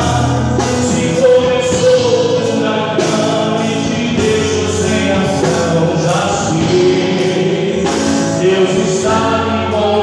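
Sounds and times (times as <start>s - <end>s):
man singing a hymn: 0.0s - 10.0s
musical accompaniment: 0.0s - 10.0s.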